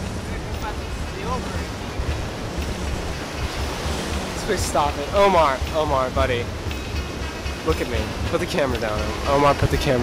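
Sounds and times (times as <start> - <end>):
ocean surf washing onto beach: 0.0 - 10.0
wind rumbling on microphone: 0.0 - 10.0.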